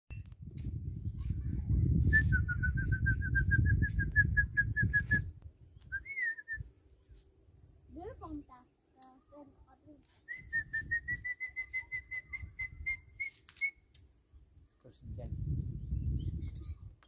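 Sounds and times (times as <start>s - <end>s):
wind rumbling on microphone: 0.1s - 8.4s, 10.3s - 13.3s, 14.3s - 17.0s
rising and falling whistle: 2.1s - 5.3s, 10.3s - 13.8s
short whistled notes: 2.1s - 6.7s, 10.3s - 13.9s, 16.0s - 16.9s.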